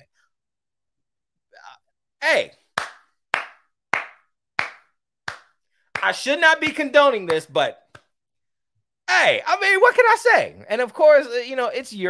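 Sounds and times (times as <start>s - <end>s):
man clapping slowly: 2.7s - 6.1s.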